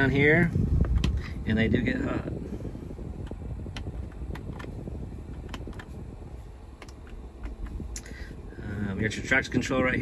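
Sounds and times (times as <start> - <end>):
blower fan running: 0.0 - 10.0.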